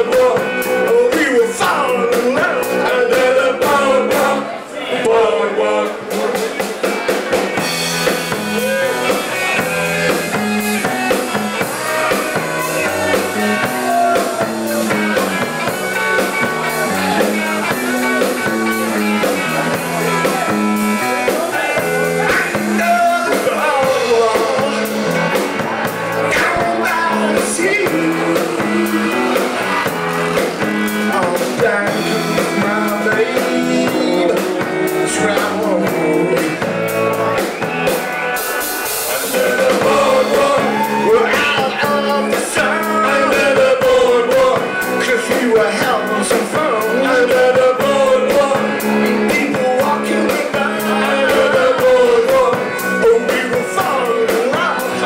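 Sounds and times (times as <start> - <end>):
drum kit: 0.0 - 4.5, 5.8 - 55.0
electric guitars: 0.0 - 5.2, 5.8 - 55.0
live rock band playing: 0.0 - 55.0.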